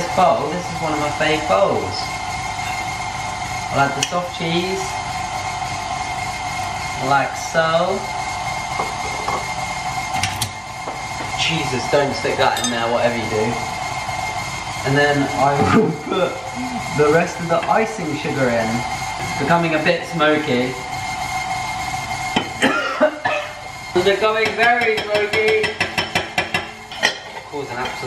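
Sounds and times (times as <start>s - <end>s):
kitchen appliance whirring hum: 0.0s - 28.0s
person coughing: 22.6s - 23.6s.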